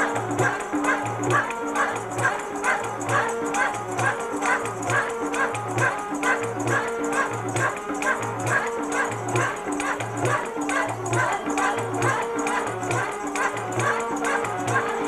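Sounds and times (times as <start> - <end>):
held melodic accompaniment: 0.0 - 15.0
person singing: 0.0 - 15.0.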